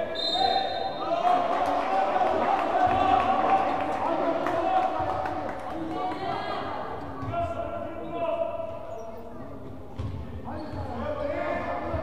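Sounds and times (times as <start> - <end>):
echoing shouting voices: 0.0 - 8.7.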